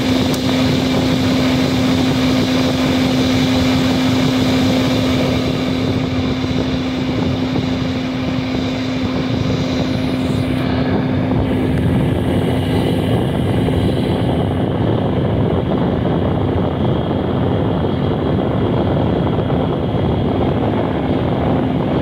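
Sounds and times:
welder humming: 0.0 - 14.9
cooling fan whirring: 0.0 - 22.0.

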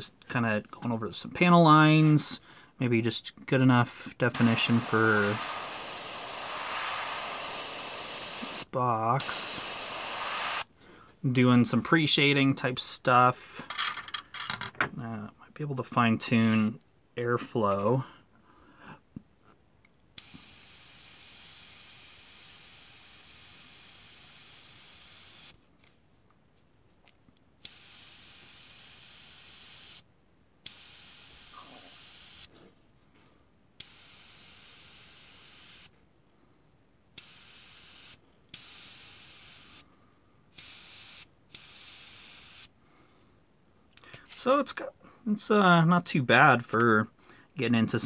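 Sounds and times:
airbrush air hiss: 4.3 - 10.7, 20.2 - 25.6, 27.6 - 30.0, 30.6 - 32.5, 33.8 - 35.9, 37.2 - 39.9, 40.5 - 42.7.

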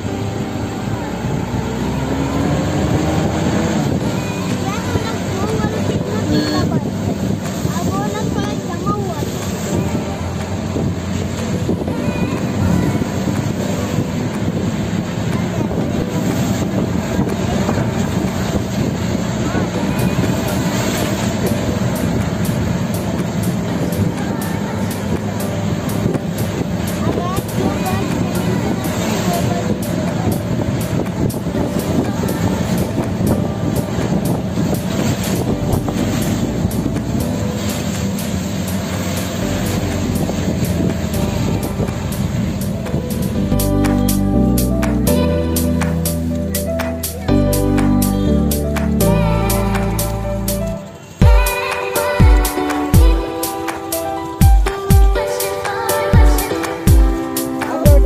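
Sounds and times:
indistinct voices: 0.0 - 58.0.

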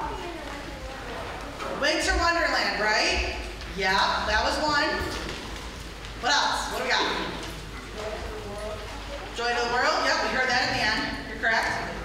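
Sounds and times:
woman speaking into a microphone: 1.8 - 5.2, 9.4 - 12.0.

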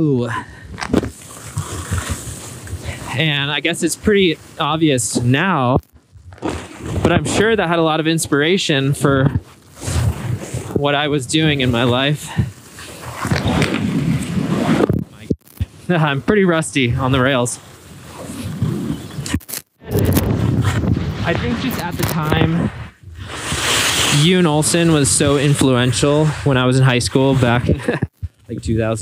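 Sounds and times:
skis grinding on a rail: 1.0 - 5.4, 6.4 - 14.9, 20.2 - 28.0
skis hissing on snow: 23.3 - 26.6.

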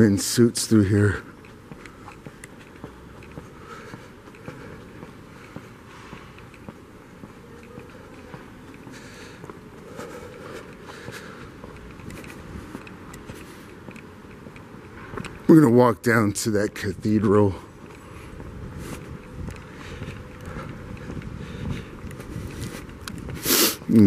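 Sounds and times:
city street noise: 0.0 - 24.0
footsteps on pavement: 0.0 - 24.0.

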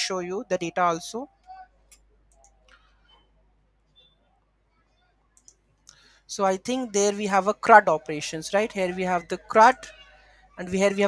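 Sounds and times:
keyboard and mouse clicks: 1.9 - 3.2.

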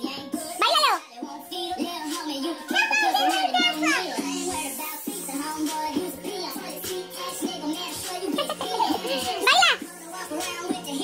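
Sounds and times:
music: 0.0 - 11.0
children's voices: 2.7 - 4.3.

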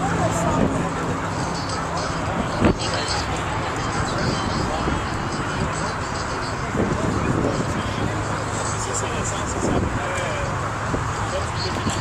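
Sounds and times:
indistinct crowd chatter: 0.0 - 12.0
outdoor background din: 0.0 - 12.0.

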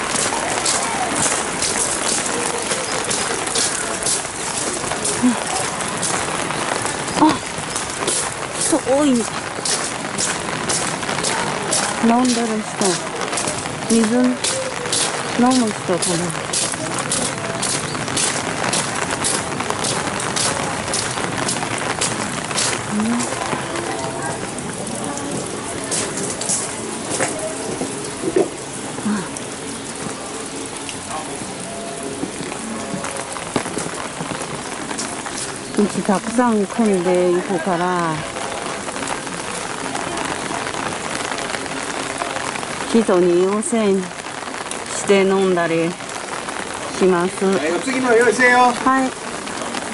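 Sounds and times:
footsteps on wet gravel: 0.0 - 28.6
rain falling: 0.0 - 49.9.

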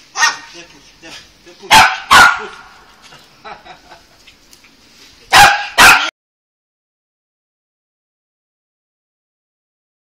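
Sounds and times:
small dog barking: 0.2 - 0.5, 1.7 - 2.8, 5.3 - 6.1.

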